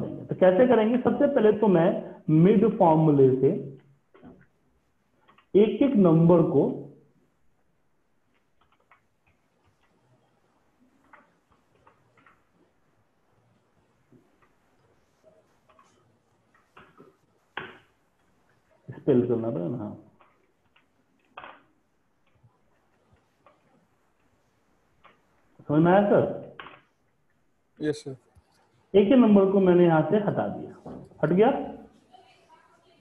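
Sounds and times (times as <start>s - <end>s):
keystrokes on computer keyboard: 8.3s - 12.8s.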